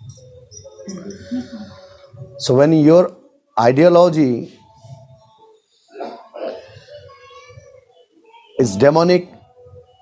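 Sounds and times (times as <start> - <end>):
person clearing throat: 6.0 - 6.7.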